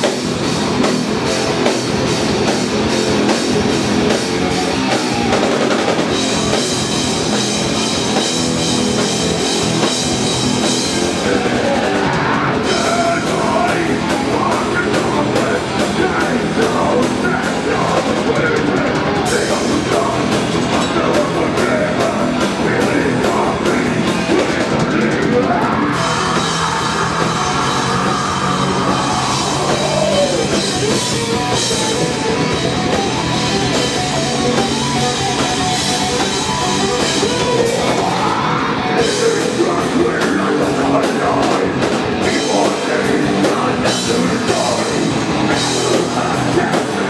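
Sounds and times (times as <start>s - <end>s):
bass guitar: 0.0s - 47.0s
distorted electric guitars: 0.0s - 47.0s
drum kit: 0.0s - 47.0s
person singing: 10.7s - 47.0s.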